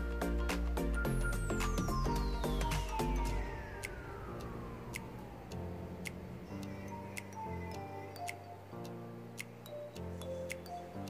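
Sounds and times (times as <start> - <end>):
electronic chords: 0.0 - 11.0
ticking percussion: 0.0 - 11.0
falling sweep: 0.5 - 7.8.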